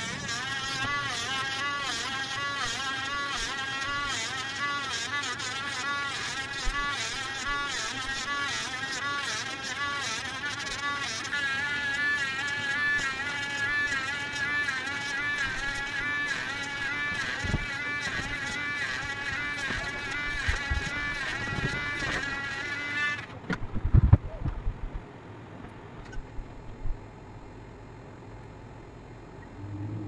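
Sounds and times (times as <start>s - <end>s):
engraving pen buzzing whine: 0.0s - 24.2s.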